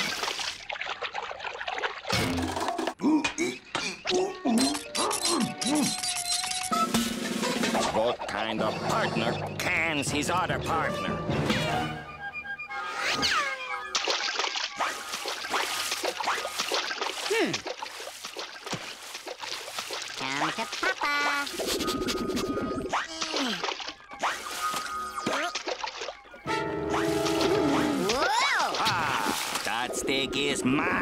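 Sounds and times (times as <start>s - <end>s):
cartoon background music: 3.4s - 16.9s, 20.2s - 31.0s.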